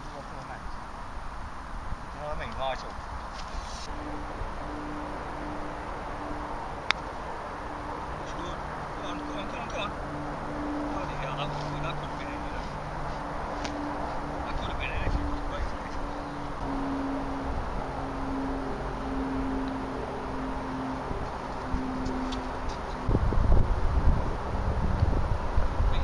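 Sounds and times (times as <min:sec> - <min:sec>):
faint wavering hum: 0:00.5 - 0:26.0
wind buffeting microphone: 0:03.9 - 0:26.0.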